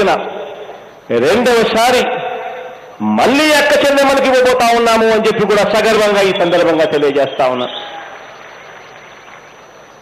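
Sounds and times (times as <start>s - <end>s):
venue background hiss: 0.0s - 10.0s.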